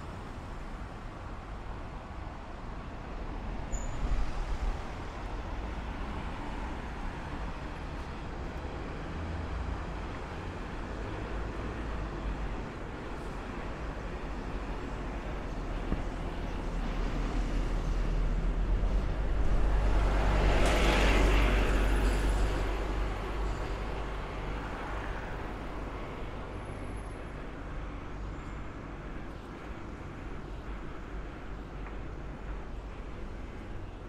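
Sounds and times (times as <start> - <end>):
bus passing by: 0.0 - 34.0
street traffic noise: 0.0 - 34.0.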